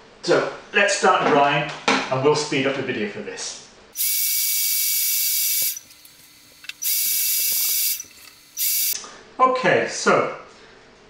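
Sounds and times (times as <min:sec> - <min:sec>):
hairdryer blowing: 0:04.0 - 0:05.8, 0:06.7 - 0:09.0.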